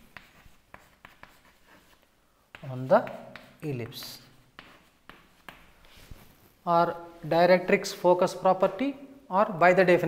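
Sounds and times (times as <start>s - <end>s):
chalk scratching on chalkboard: 0.0s - 6.5s.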